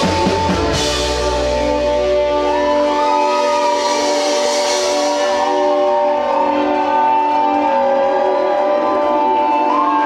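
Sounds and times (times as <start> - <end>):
sustained synth and guitar chord: 0.0 - 10.0.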